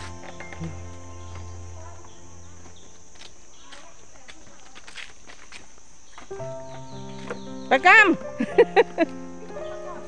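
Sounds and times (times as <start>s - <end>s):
background music with held notes: 0.0s - 3.5s, 6.3s - 10.0s
person speaking: 0.0s - 4.8s
footsteps on boardwalk: 0.0s - 10.0s
steady high hiss: 0.0s - 10.0s.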